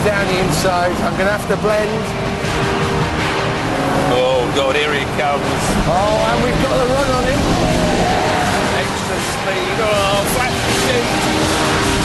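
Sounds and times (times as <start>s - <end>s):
sports car engines droning: 0.0s - 12.0s.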